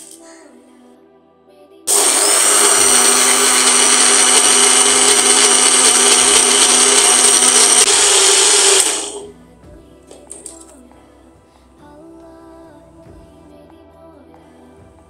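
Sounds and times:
mixer grinder running: 1.9s - 9.3s.

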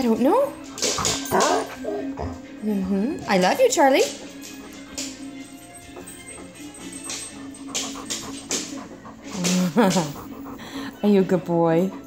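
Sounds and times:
dog breathing and sniffing: 0.0s - 12.0s
woman laughing: 9.4s - 10.3s.

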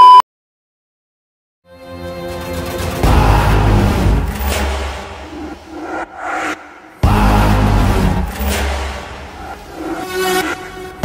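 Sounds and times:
deep rumbling trailer hit: 3.0s - 9.5s
rising whoosh: 3.0s - 10.6s.

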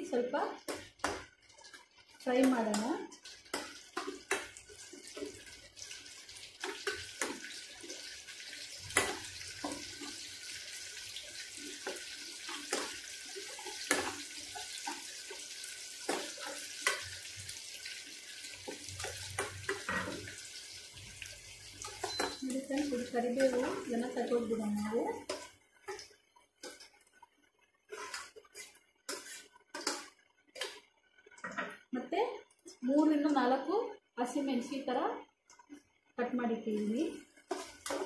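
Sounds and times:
leaves sizzling in hot oil: 0.0s - 27.1s, 36.6s - 38.0s
spoon clinking against pan: 21.8s - 22.5s.

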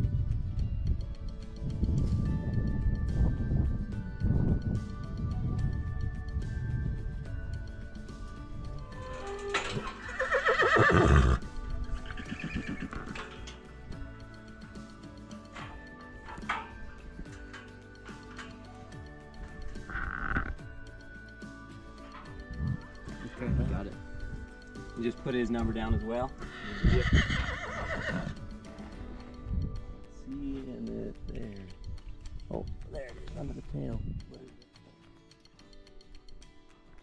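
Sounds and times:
horse whinnying: 8.8s - 13.4s, 19.8s - 20.6s, 26.4s - 28.5s.

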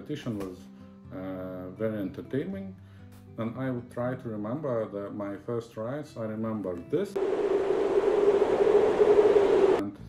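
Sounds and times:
loud static hiss: 7.2s - 9.8s
mid-pitched tone: 7.2s - 9.8s.

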